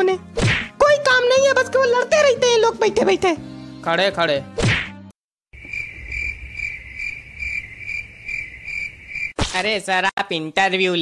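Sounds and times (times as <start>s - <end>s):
cricket chirping: 5.6s - 9.4s.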